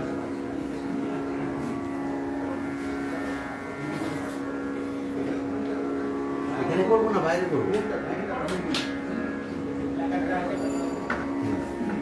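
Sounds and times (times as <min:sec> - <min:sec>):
low instrumental drone: 0:00.0 - 0:12.0.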